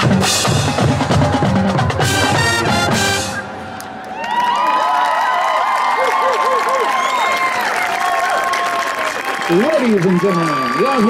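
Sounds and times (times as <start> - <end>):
marching band brass and drums: 0.0 - 3.8
crowd cheering and whooping: 0.9 - 2.6, 3.3 - 11.0.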